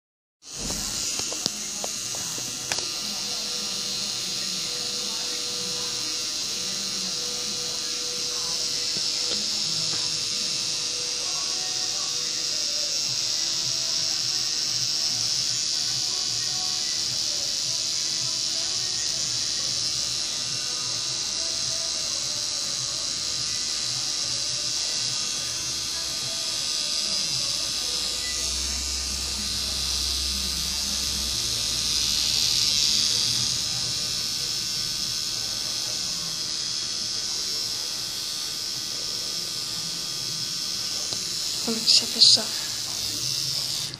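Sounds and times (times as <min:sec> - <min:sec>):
tattoo machine buzzing: 0:00.4 - 0:43.9.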